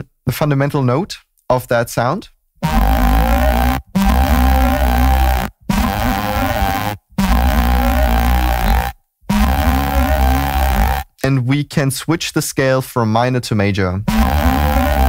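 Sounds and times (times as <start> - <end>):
deep buzzy synth bass notes: 2.6 - 11.2, 14.0 - 15.0.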